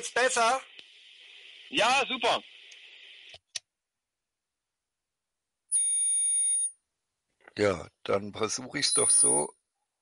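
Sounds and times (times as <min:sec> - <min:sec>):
faint hiss: 0:00.0 - 0:03.4
click: 0:00.7 - 0:00.9
man speaking: 0:07.5 - 0:09.6.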